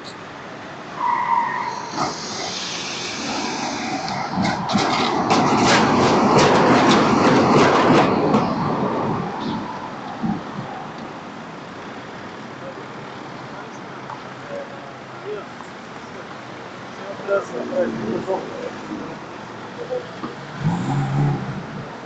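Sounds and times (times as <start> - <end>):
tram passing on rails: 0.0 - 22.0
wheels clicking and rattling on track: 1.0 - 20.6.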